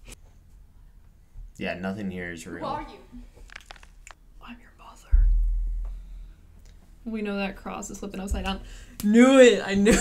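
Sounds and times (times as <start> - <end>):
faint whispering: 4.4 - 5.3
deep boom: 5.1 - 6.4.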